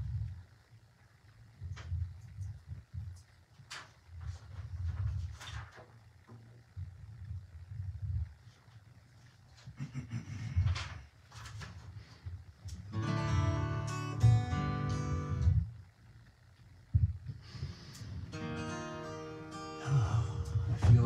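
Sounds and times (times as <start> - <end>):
acoustic guitar chords strummed: 12.9 - 15.6, 18.2 - 21.0.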